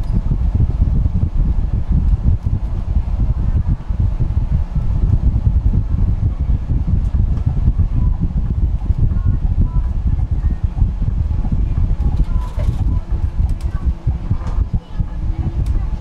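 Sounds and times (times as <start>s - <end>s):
bus rumbling while driving: 0.0s - 16.0s.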